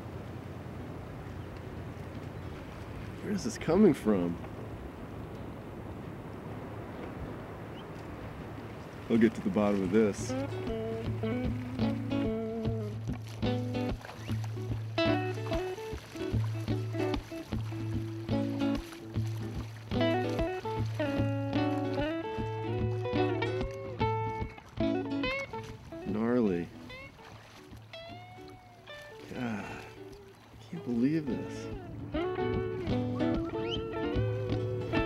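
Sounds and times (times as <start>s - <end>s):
background music melody: 9.1s - 35.0s.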